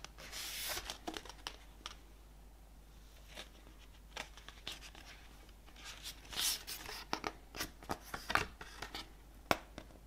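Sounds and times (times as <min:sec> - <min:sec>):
booklet pages turning: 0:00.1 - 0:02.0, 0:03.2 - 0:09.1.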